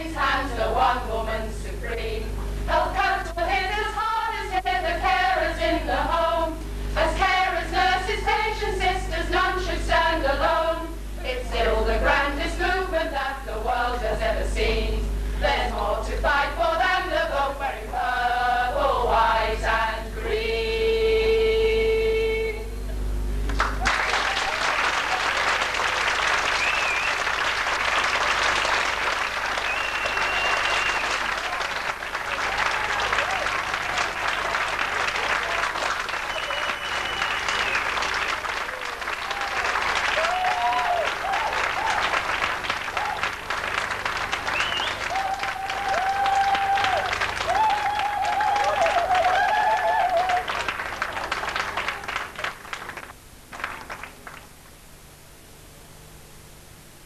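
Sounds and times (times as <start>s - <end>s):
audience applauding: 23.5s - 54.5s.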